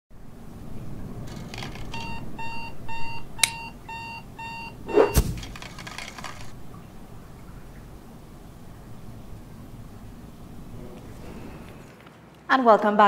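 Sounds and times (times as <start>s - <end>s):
digital alarm clock beeping: 2.0s - 5.2s
sharp click: 3.4s - 3.6s.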